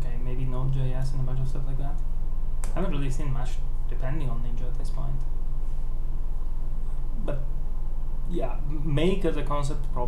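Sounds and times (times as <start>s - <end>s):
man speaking: 0.0s - 2.0s, 2.7s - 5.2s, 8.3s - 10.0s
steady low hum: 0.0s - 10.0s.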